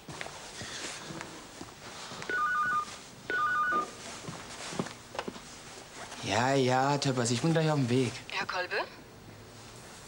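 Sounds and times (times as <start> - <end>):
electronic telephone ringing: 2.3 - 3.9.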